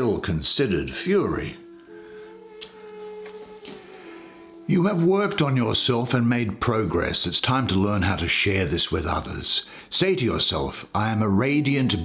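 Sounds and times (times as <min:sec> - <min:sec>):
soft background music: 0:00.0 - 0:08.0, 0:11.0 - 0:12.0.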